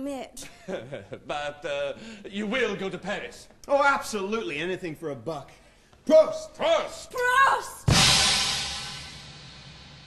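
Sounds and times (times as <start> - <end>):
bass drum hit: 7.9 - 10.0
crash cymbal ringing: 7.9 - 10.0.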